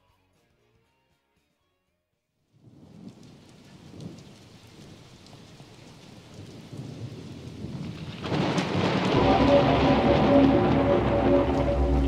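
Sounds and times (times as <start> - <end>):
rain: 2.6 - 12.0
rolling thunder: 2.7 - 12.0.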